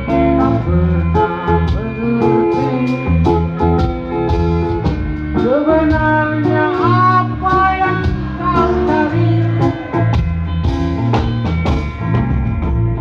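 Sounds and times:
live rock band music: 0:00.0 - 0:13.0
sliding lead guitar melody: 0:00.0 - 0:13.0.

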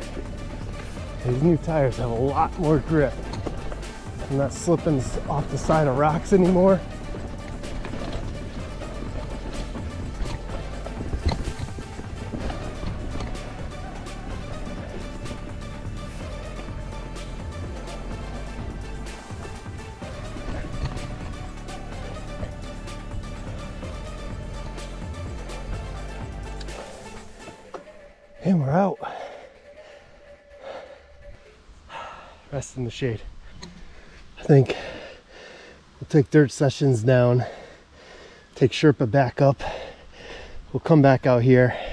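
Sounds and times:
background music: 0:00.0 - 0:32.8
bike knocks and rattles: 0:02.1 - 0:15.6, 0:18.2 - 0:25.4.

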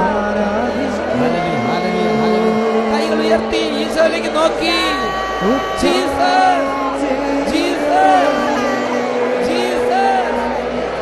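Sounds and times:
congregation praying aloud: 0:00.0 - 0:11.0.

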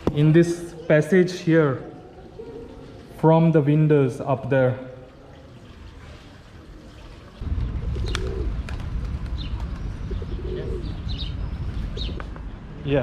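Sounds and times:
pigeons cooing: 0:01.8 - 0:03.1, 0:06.4 - 0:12.4
steady low rumble: 0:07.4 - 0:12.8.

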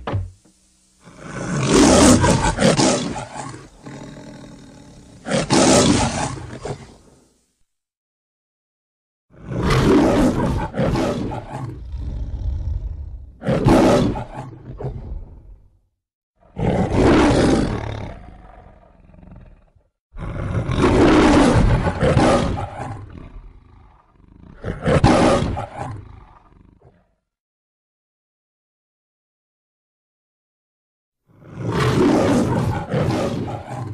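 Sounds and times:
lion roaring and growling: 0:01.0 - 0:07.1, 0:09.3 - 0:15.6, 0:16.4 - 0:27.2, 0:31.4 - 0:33.9.

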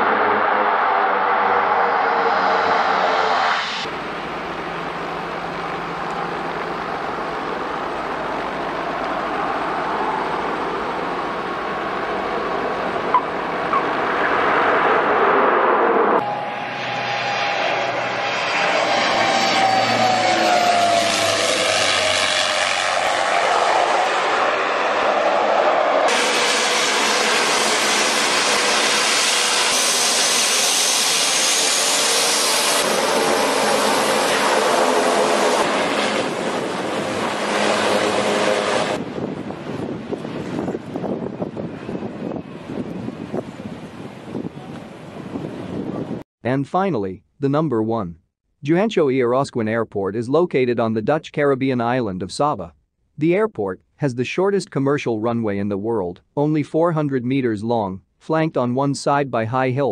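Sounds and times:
turboprop planes landing: 0:00.0 - 0:46.2
turboprop at takeoff power: 0:00.0 - 0:46.3.

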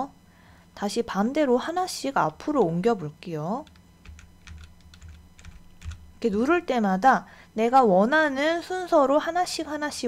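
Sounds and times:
keyboard keys clicking: 0:03.6 - 0:06.0.

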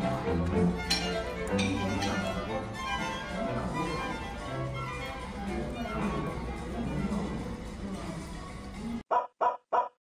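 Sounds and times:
soft background music: 0:00.0 - 0:09.0.

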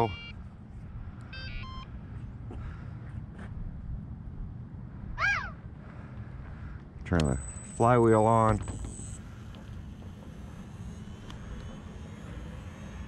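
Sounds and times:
short electronic beeps: 0:00.0 - 0:00.4, 0:01.3 - 0:01.9, 0:07.2 - 0:09.2
low steady rumble: 0:00.1 - 0:13.0.

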